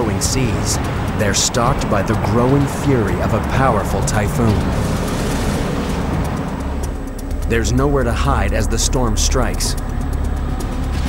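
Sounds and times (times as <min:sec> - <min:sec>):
background music: 0:00.0 - 0:11.0
heavy sea: 0:00.0 - 0:11.0
storm wind roaring: 0:00.0 - 0:11.0.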